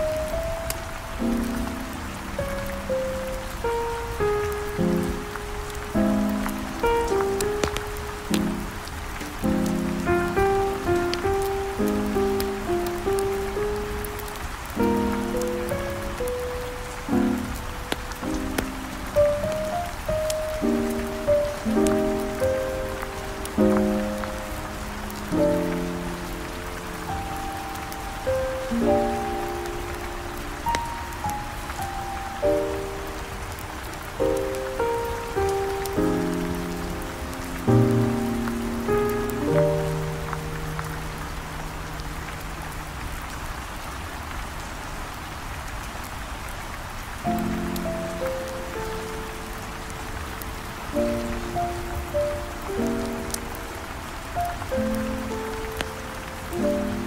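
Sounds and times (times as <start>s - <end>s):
steady rain falling: 0.0s - 57.0s.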